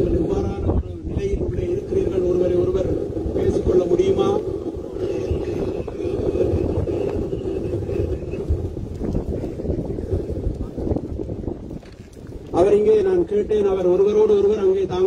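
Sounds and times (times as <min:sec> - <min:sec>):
man speaking over loudspeaker: 0:00.0 - 0:04.5, 0:12.5 - 0:15.0
wind rumbling on microphone: 0:00.0 - 0:15.0.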